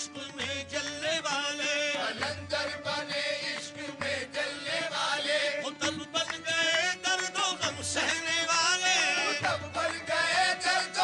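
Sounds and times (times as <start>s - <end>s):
harmonium: 0.0s - 11.0s
group chanting devotional song: 0.1s - 11.0s.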